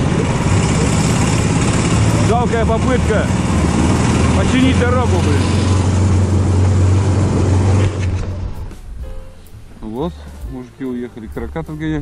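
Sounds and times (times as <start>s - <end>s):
vehicle engine droning: 0.0s - 9.0s.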